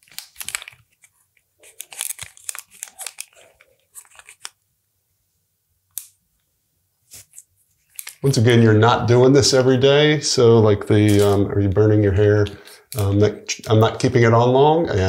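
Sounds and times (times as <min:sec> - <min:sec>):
comb crackling through beard hair: 0:11.0 - 0:11.5.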